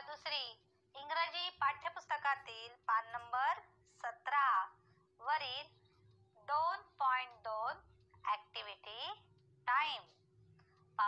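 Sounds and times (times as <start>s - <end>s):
woman speaking: 0.0s - 5.8s, 6.4s - 10.2s.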